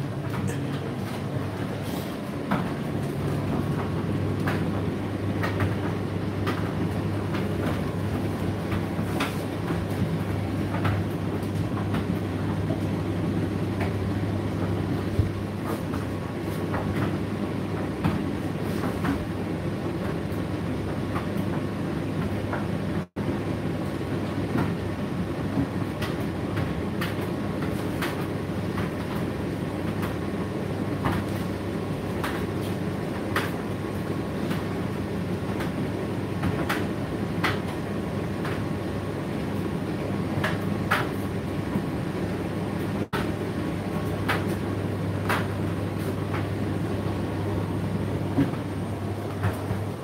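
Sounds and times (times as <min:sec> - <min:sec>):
tumble dryer motor hum: 0:00.0 - 0:50.0.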